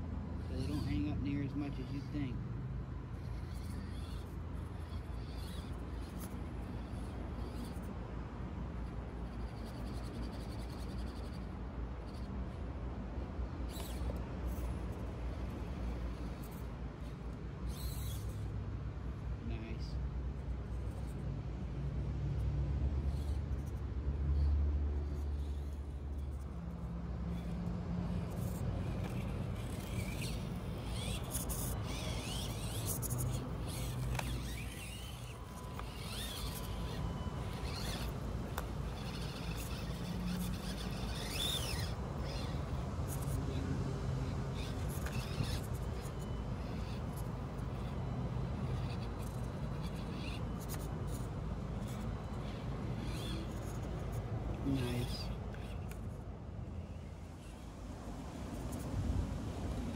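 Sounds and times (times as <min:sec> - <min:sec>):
small electric motor whirring: 0:00.0 - 0:59.9.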